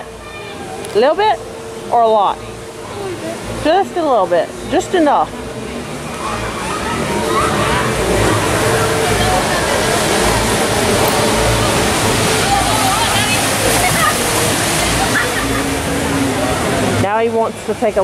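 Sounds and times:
people chattering: 0:00.0 - 0:18.0
rushing churning water: 0:00.0 - 0:18.0.

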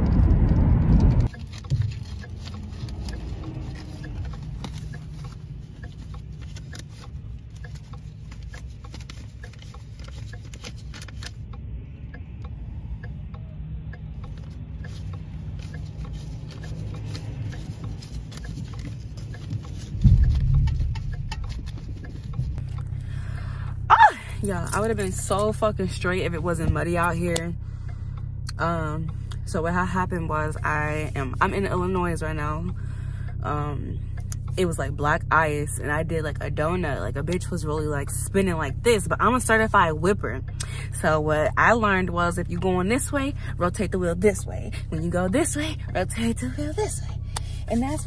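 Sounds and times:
low engine hum: 0:00.0 - 0:48.0
low rumble: 0:00.0 - 0:48.0
road noise from driving: 0:00.0 - 0:48.0.

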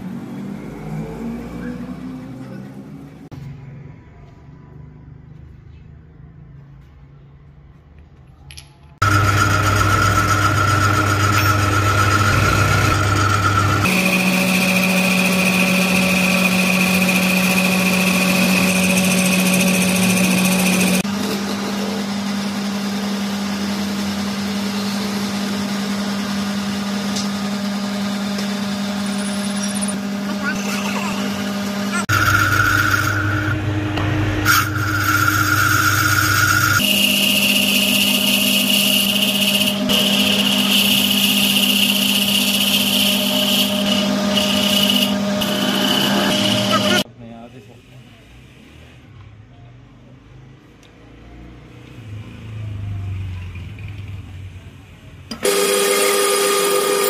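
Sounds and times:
drill bit boring into wood: 0:09.0 - 0:21.0, 0:28.4 - 0:33.6, 0:34.4 - 0:47.0, 0:55.3 - 0:57.0
turning tool cutting wood: 0:09.0 - 0:47.1, 0:55.3 - 0:57.0
wood lathe motor humming: 0:09.0 - 0:47.1, 0:55.3 - 0:57.0.

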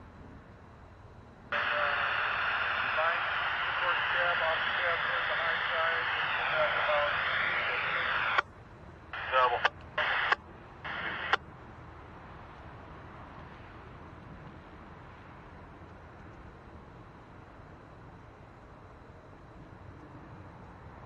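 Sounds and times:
loud radio static: 0:01.5 - 0:08.4, 0:09.2 - 0:11.4
muffled radio voice: 0:01.6 - 0:08.4, 0:09.2 - 0:11.4
radio click: 0:01.6 - 0:08.4, 0:09.2 - 0:11.4.

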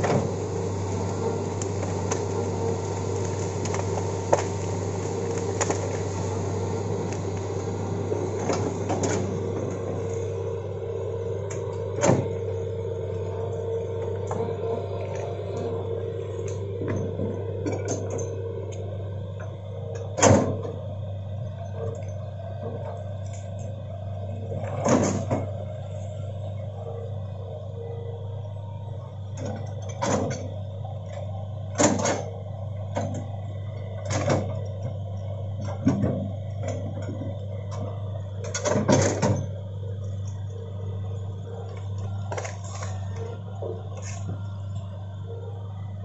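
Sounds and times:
branches and wood cracking: 0:00.0 - 0:10.5, 0:41.8 - 0:44.6
excavator diesel engine humming: 0:00.0 - 0:46.0
crash of brush and wood: 0:01.6 - 0:07.7.

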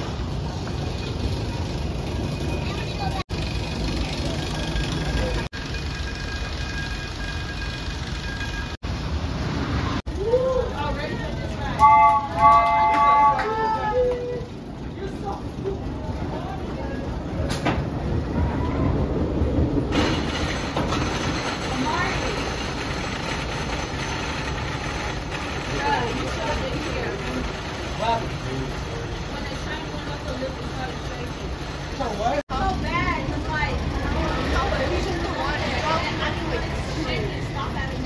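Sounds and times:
roller coaster train rumbling: 0:00.0 - 0:38.0.

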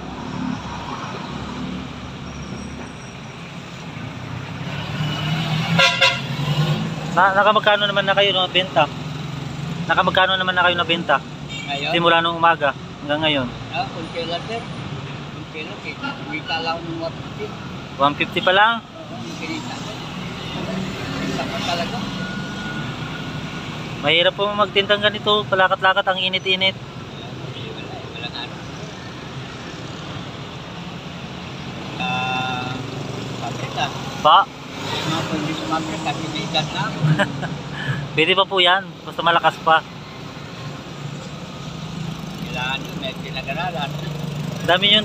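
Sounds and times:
truck engine rumbling: 0:28.0 - 0:45.0.

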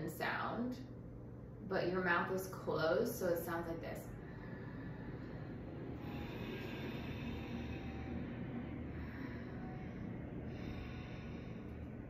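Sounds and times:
slow constricted nasal breathing: 0:04.2 - 0:12.0.

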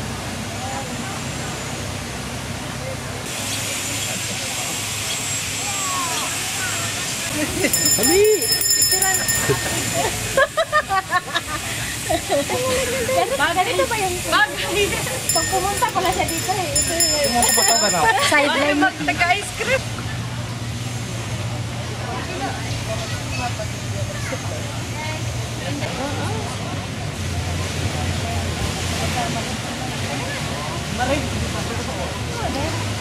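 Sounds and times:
steady rushing outdoor noise: 0:00.0 - 0:33.0
faint voices of people: 0:02.6 - 0:10.4, 0:11.4 - 0:33.0.

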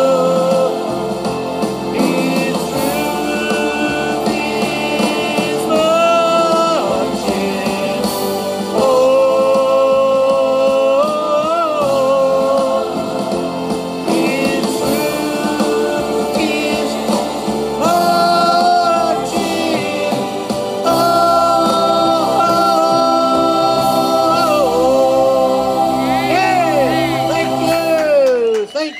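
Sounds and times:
man singing long notes: 0:00.0 - 0:01.2, 0:01.8 - 0:28.3
backing track with choir: 0:00.0 - 0:28.9.

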